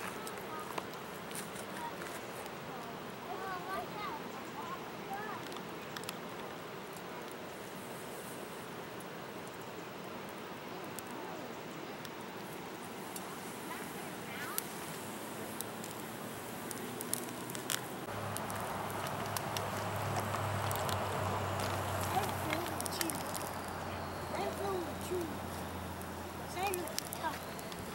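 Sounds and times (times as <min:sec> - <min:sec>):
fire crackling and popping: 0:00.0 - 0:27.9
river water rushing: 0:11.6 - 0:27.9.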